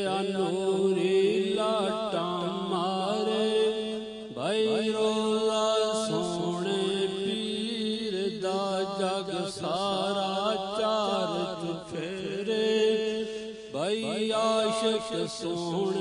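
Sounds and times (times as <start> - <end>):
man singing devotional song: 0.0 - 16.0.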